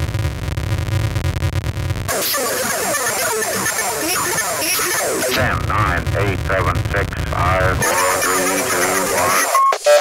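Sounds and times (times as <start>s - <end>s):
deep pulsing bass: 0.0s - 2.2s, 4.0s - 9.2s
buzzing synthesizer chord: 1.0s - 6.2s.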